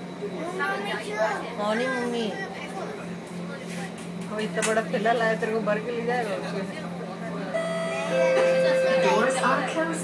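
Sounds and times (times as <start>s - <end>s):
train hum: 2.8s - 10.0s
voices talking: 7.4s - 10.0s
steady held tone: 7.5s - 10.0s
people laughing: 8.1s - 9.1s.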